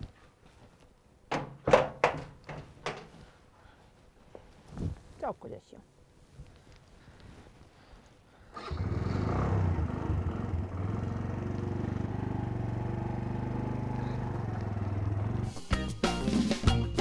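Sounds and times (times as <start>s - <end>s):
motorcycle engine running: 8.7s - 15.6s
music with drums: 15.5s - 17.0s.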